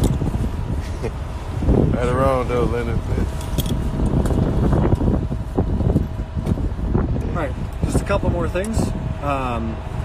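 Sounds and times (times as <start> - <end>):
faint steady whine: 0.0 - 10.0
helicopter cabin rumble: 0.0 - 10.0
wind buffeting microphone: 0.0 - 10.0.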